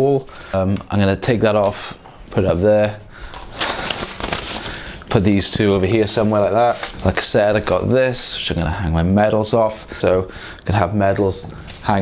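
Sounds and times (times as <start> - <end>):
paper rustling and crinkling: 0.2 - 8.7, 11.2 - 12.0.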